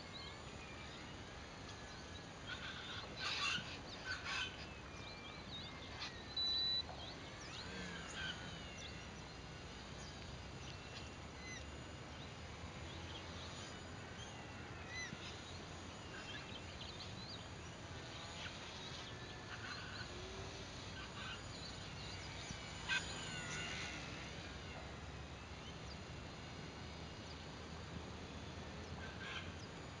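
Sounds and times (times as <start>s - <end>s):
birds chirping and whistling: 2.0s - 9.4s.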